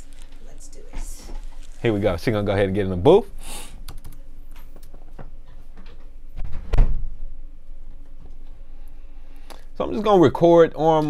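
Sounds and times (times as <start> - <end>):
door shutting with dull thump: 6.4 - 7.2.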